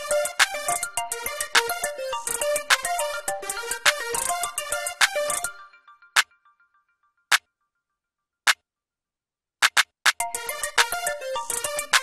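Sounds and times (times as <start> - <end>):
synth melody: 0.0 - 7.2, 10.2 - 12.0
trap clap hits: 9.6 - 10.2.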